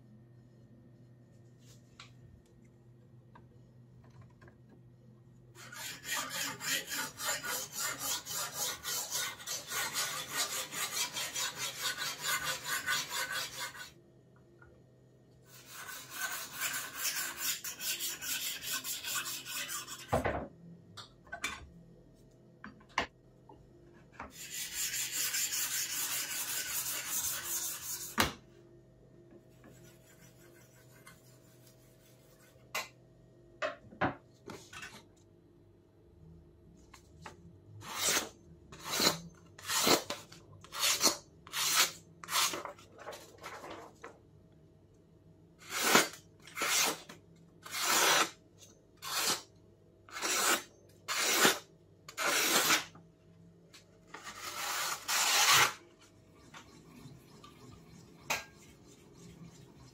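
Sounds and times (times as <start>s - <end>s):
sharpening stone scraping knife: 5.6s - 13.9s, 15.7s - 20.1s, 47.6s - 48.4s, 49.0s - 49.4s, 50.1s - 52.9s.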